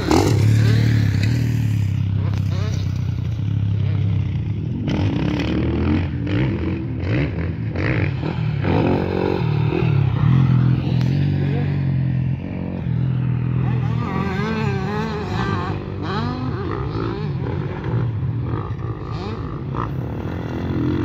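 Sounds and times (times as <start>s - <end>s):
motorcycle engines revving: 0.0s - 21.0s.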